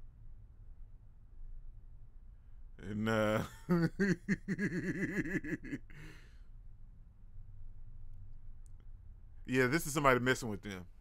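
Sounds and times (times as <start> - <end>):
low steady hum: 0.0 - 11.0
man sighing: 4.7 - 6.3.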